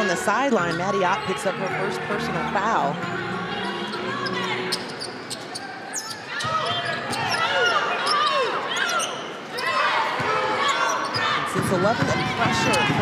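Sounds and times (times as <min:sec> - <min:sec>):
sneakers squeaking: 0:00.5 - 0:13.0.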